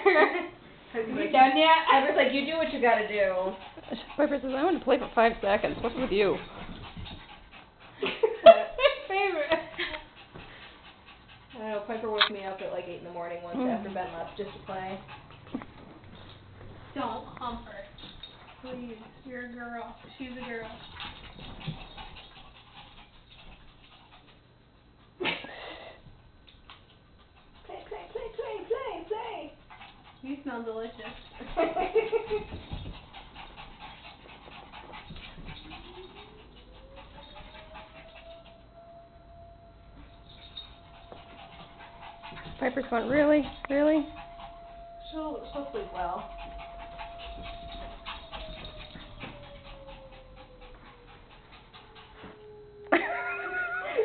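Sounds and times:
dogs scuffling on carpet: 1.2s - 7.6s, 11.6s - 22.4s, 30.3s - 38.3s, 40.0s - 52.4s
thin whine-like tone: 31.0s - 54.0s.

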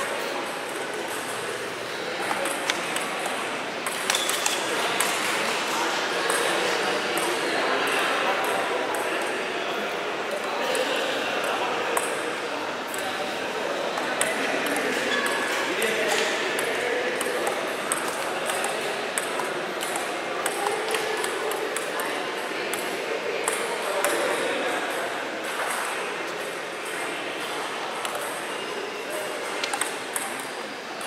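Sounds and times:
murmur of voices: 0.0s - 31.0s
table tennis ball clicking: 2.2s - 5.4s, 14.0s - 24.2s, 28.0s - 28.4s, 29.6s - 30.6s.

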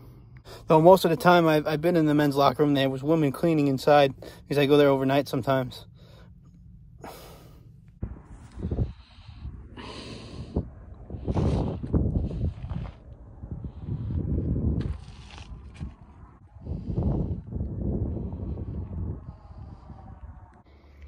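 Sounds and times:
wind buffeting microphone: 8.0s - 20.7s.

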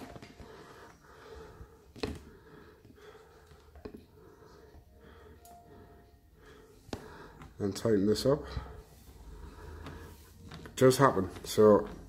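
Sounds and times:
wire handling sounds: 0.0s - 1.0s, 6.8s - 12.0s.

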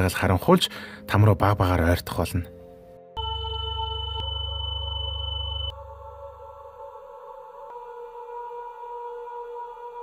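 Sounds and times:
dark ambient electronic drone: 3.2s - 6.1s.

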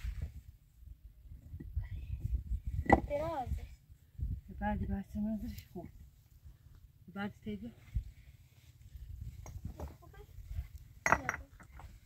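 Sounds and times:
stone slabs knocking and scraping: 2.8s - 3.2s, 11.0s - 11.9s
light stone clinks: 10.8s - 11.9s.

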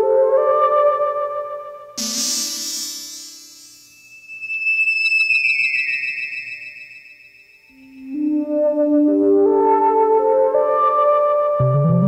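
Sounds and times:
high synthesizer tone sliding down: 2.0s - 4.5s.

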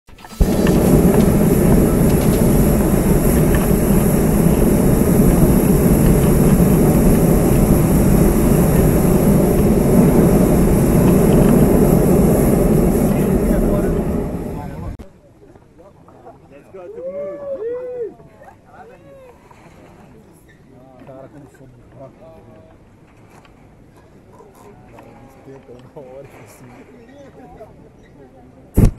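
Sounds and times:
propane burner firing: 0.1s - 15.0s.

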